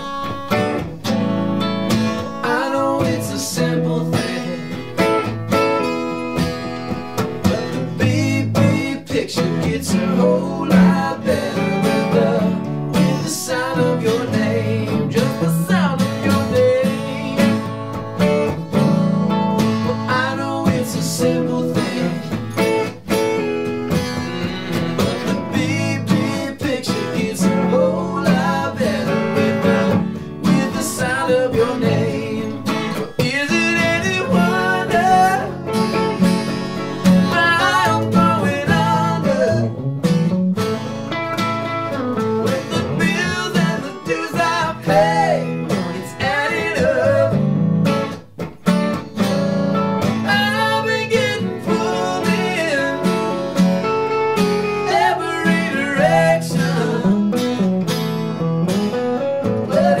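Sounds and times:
acoustic guitar strummed: 0.0s - 60.0s
electric guitar picked: 0.0s - 60.0s
man singing: 2.1s - 5.3s, 7.2s - 18.9s, 19.6s - 23.1s, 24.4s - 39.9s, 42.2s - 47.6s, 49.2s - 57.6s, 59.4s - 60.0s.

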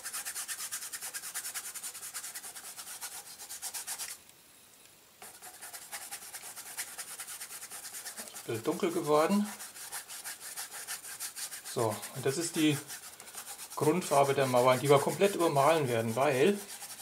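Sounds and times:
paintbrush scrubbing on canvas: 0.0s - 4.2s, 5.2s - 17.0s.

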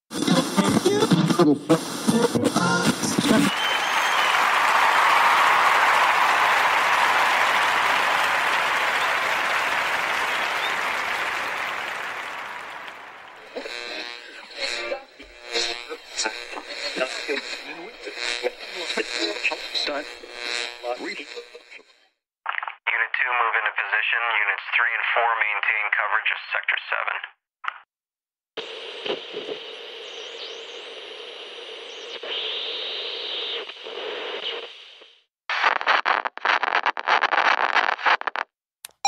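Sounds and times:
garbled radio-like voice: 0.2s - 3.5s, 13.4s - 20.2s, 20.8s - 21.8s, 22.5s - 27.4s.

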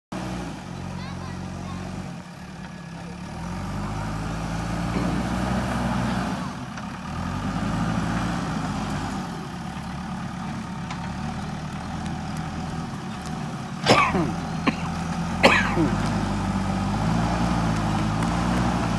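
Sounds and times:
diesel engine revving under load: 0.1s - 18.9s.

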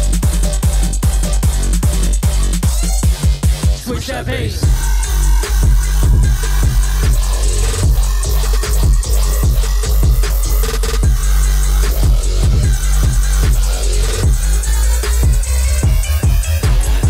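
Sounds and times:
kick-drum beat: 0.0s - 3.9s, 4.6s - 17.0s
deep bass line: 0.0s - 17.0s.

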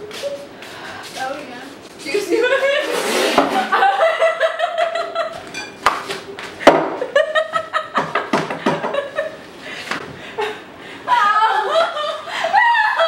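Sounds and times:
young women laughing: 2.2s - 5.4s, 7.0s - 9.4s, 10.2s - 13.0s
women crying out: 11.1s - 13.0s.

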